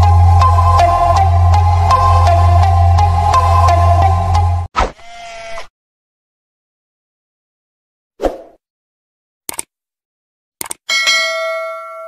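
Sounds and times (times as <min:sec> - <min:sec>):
notification bell ding: 0:10.9 - 0:12.0.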